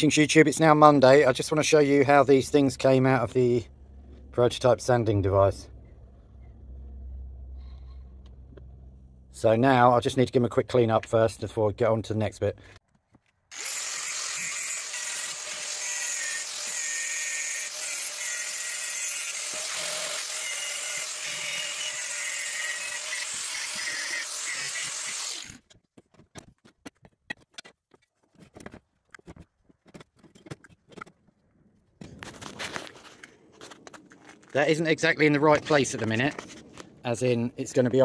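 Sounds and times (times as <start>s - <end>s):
cordless power tool running: 13.5s - 25.6s.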